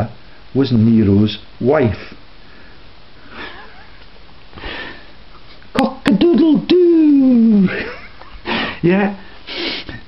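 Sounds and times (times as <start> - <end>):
steady low hiss: 0.0 - 10.0
person sniffing: 4.6 - 5.1, 9.4 - 10.0.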